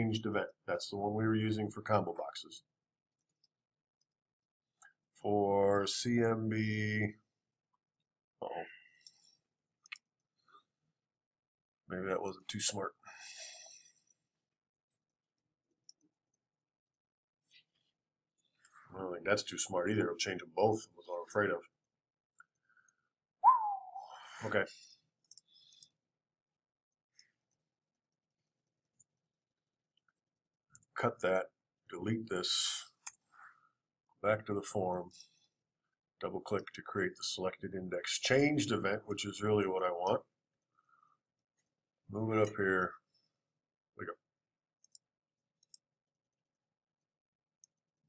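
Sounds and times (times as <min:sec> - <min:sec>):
computer mouse clicks: 0:44.8 - 0:45.0, 0:45.6 - 0:45.8.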